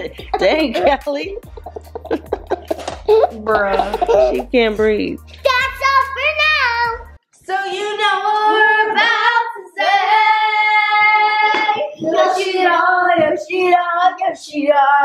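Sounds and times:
girls singing together: 7.4 - 15.0.

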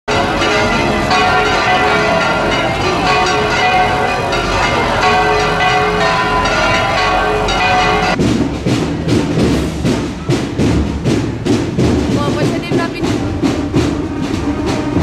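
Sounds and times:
bells ringing in a peal: 0.1 - 8.2.

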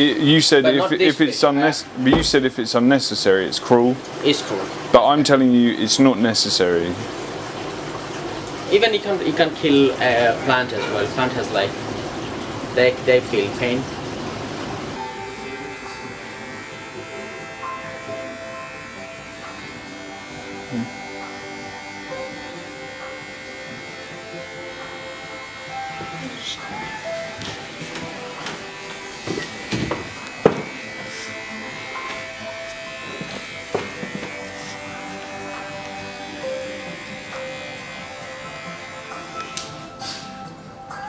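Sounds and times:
electric hair clippers buzzing: 1.9 - 2.6, 13.3 - 40.6
sharp knocks: 2.1 - 2.6
background music: 15.0 - 41.0.

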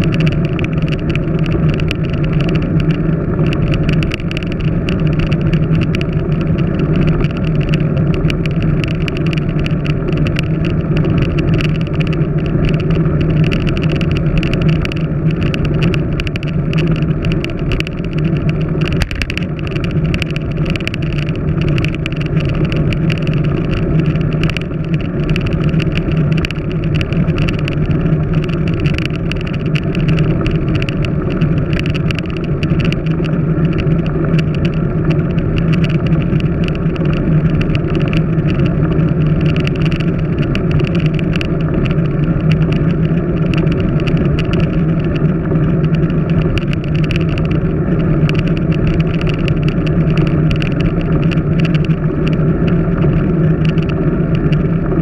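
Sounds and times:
wind and road noise: 0.0 - 55.0.

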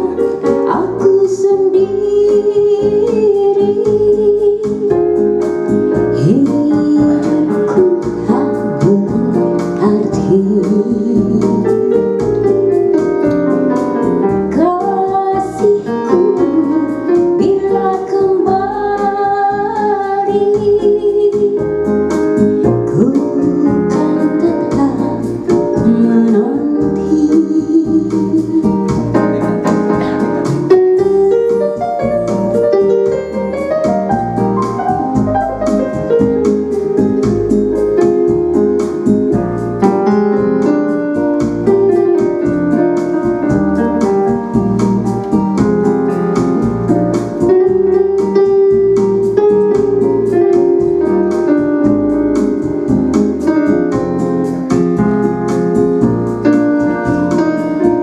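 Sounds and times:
electronic keyboard piano melody: 0.0 - 58.0.

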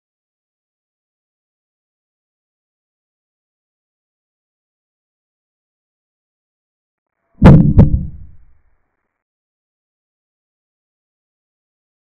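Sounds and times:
deep thumps sound effect: 7.4 - 8.4.

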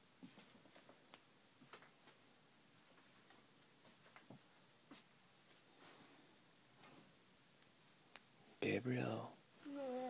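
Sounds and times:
faint irregular clicks: 7.6 - 8.3.

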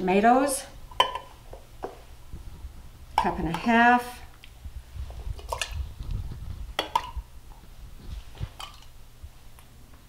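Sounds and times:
ladle scooping in glass bowl: 5.3 - 5.9.

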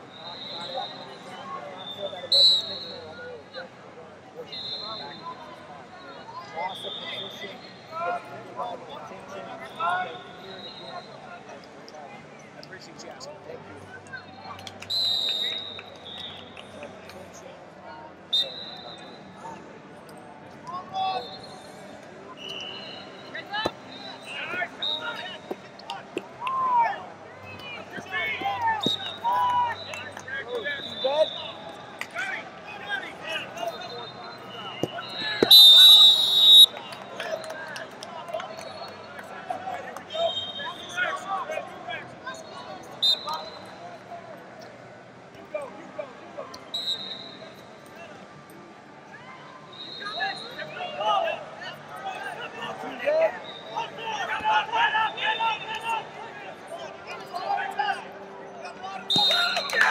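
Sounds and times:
referee's whistle blast: 0.1 - 1.2, 1.8 - 3.1, 4.4 - 5.2, 14.9 - 16.5, 18.3 - 19.2, 28.8 - 31.6, 33.6 - 36.8, 40.1 - 41.0, 42.4 - 43.8, 46.7 - 47.5, 49.7 - 50.7, 59.1 - 59.9
short faint whistle toots: 0.1 - 3.2, 14.8 - 16.6, 18.3 - 19.2, 22.4 - 25.6, 28.7 - 31.5, 33.6 - 36.8, 42.4 - 43.8, 46.6 - 47.7, 59.1 - 59.9.

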